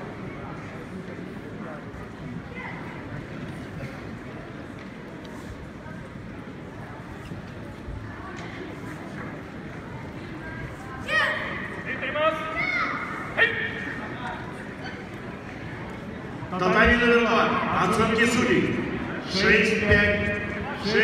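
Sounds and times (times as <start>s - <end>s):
crowd murmur: 0.0s - 21.0s.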